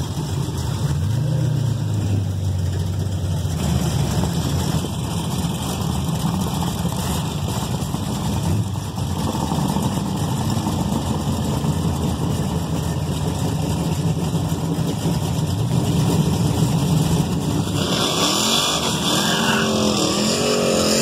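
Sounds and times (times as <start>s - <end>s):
car engine idling: 0.0s - 21.0s
car engine revving: 0.0s - 21.0s.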